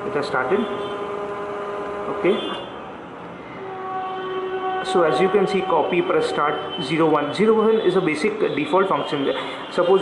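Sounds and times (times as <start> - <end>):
photocopier motors and fans humming: 0.0 - 3.8.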